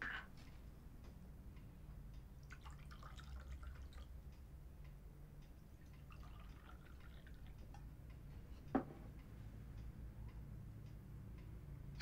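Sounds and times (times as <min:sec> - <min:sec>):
drink trickling with clicks: 0:05.9 - 0:07.8.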